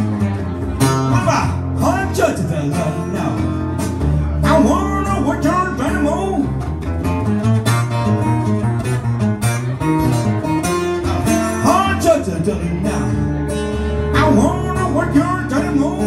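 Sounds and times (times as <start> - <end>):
acoustic guitar playing: 0.0 - 16.0.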